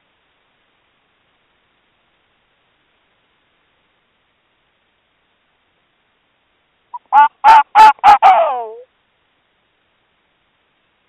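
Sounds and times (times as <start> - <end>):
fox barking: 7.0 - 8.8
fox call falling in pitch: 7.0 - 8.8.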